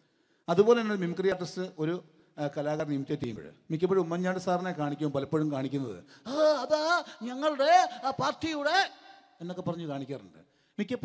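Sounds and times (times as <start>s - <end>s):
man speaking into a microphone: 0.4s - 11.0s.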